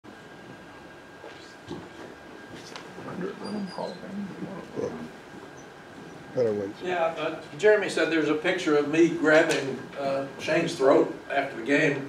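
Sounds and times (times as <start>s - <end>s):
low murmured voices: 2.6s - 5.2s, 6.1s - 8.9s.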